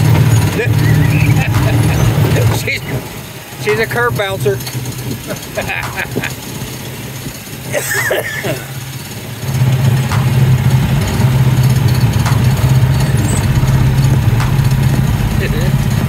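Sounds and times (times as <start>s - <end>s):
small engine running: 0.0s - 16.0s
short laugh: 7.7s - 8.8s.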